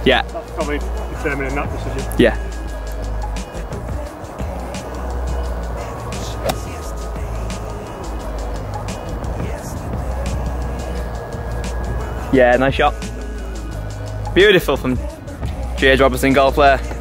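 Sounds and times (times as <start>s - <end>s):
background music: 0.0s - 17.0s
golf club striking ball: 5.5s - 8.2s.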